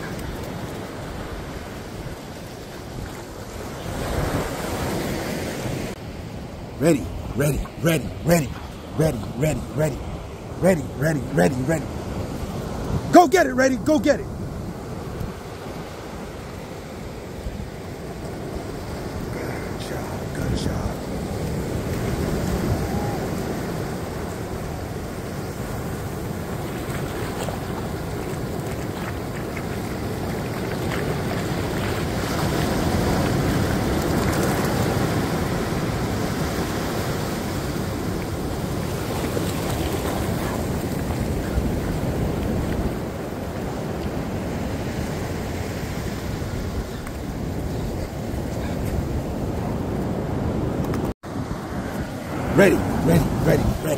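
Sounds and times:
ocean surf breaking: 0:00.0 - 0:53.9.

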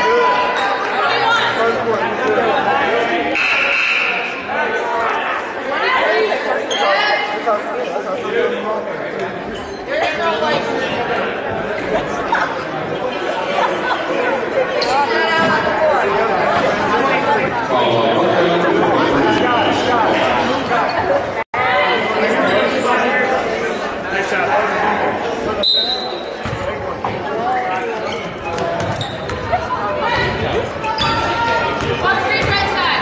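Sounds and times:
crowd babble: 0:00.0 - 0:33.0.

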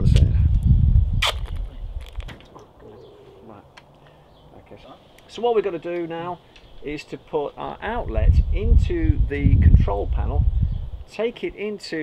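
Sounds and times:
tape ripping off roll: 0:01.2 - 0:02.4.

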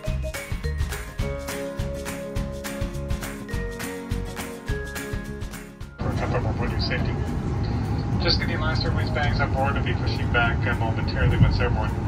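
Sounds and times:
background music: 0:00.0 - 0:12.0
airliner cabin rumble: 0:06.0 - 0:12.0
public address announcement: 0:06.0 - 0:12.0.

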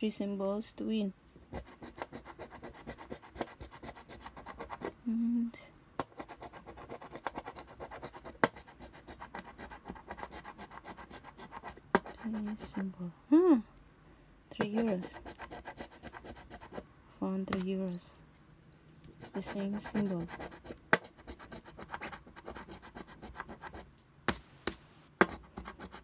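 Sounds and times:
scratching a lottery ticket: 0:01.6 - 0:04.9, 0:06.1 - 0:12.8, 0:14.6 - 0:16.8, 0:19.2 - 0:23.8, 0:25.4 - 0:26.0.

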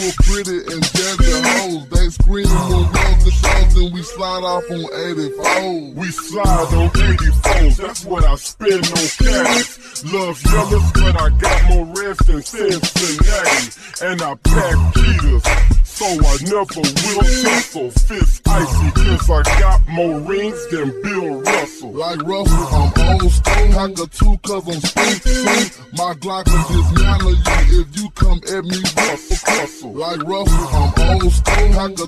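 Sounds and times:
pitched-down rapping: 0:00.0 - 0:32.0
deep bass hits: 0:02.4 - 0:03.8, 0:06.5 - 0:07.8, 0:10.5 - 0:11.9, 0:14.5 - 0:15.9, 0:18.5 - 0:19.9, 0:22.5 - 0:23.8, 0:26.6 - 0:27.9, 0:30.6 - 0:31.8.

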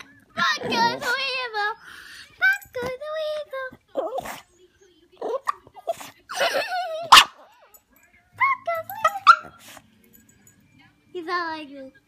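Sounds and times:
dog barking: 0:07.0 - 0:07.5, 0:09.0 - 0:09.6
dog yelping and whining: 0:08.4 - 0:09.7.

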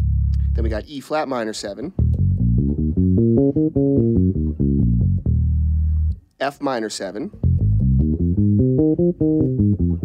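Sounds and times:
electric bass plucked notes: 0:00.0 - 0:00.9, 0:02.0 - 0:06.2, 0:07.3 - 0:10.0.

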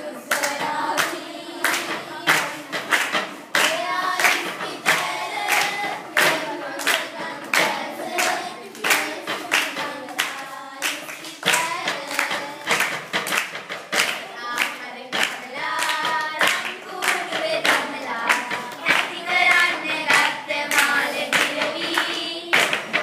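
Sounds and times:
girls singing unaccompanied: 0:00.0 - 0:23.0
hand claps: 0:00.1 - 0:23.0
hands beating on wooden tabletop: 0:11.4 - 0:14.2.

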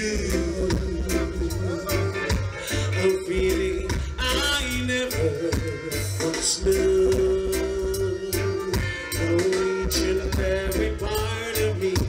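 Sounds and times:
bass line: 0:00.0 - 0:12.0
drums: 0:00.0 - 0:12.0
man singing into microphone: 0:00.0 - 0:12.0.

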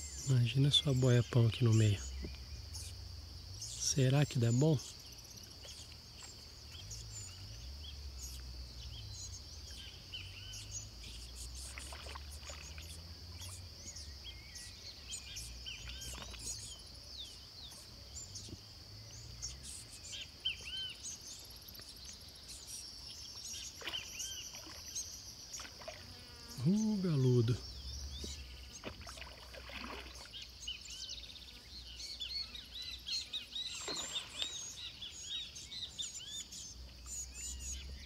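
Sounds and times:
bird chirps: 0:00.0 - 0:29.0, 0:30.2 - 0:38.0.

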